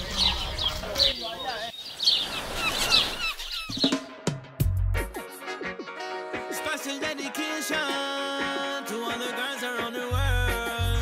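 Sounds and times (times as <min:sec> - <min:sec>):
songbirds chirping: 0:00.0 - 0:04.2
music: 0:03.8 - 0:11.0.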